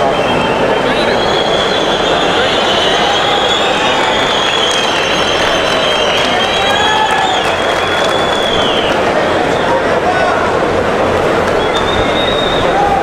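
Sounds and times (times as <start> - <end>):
high wavering whistle: 0.0 - 9.7, 11.6 - 13.0
crowd applauding and cheering: 0.0 - 13.0.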